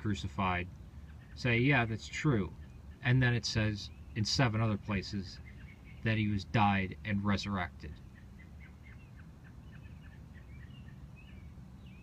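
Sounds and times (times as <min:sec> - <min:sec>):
bird chirping: 0:00.0 - 0:12.0
low steady rumble: 0:00.0 - 0:12.0.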